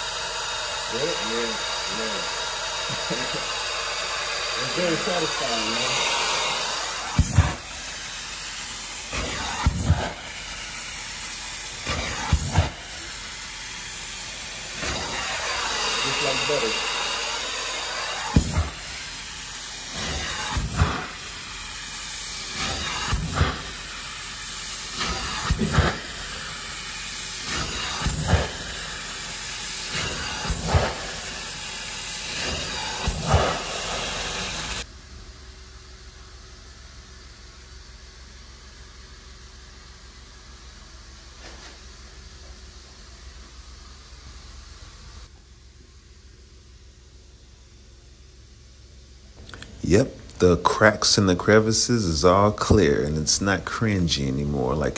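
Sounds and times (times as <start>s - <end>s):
carpet extraction tool suction hiss: 0.0s - 34.9s.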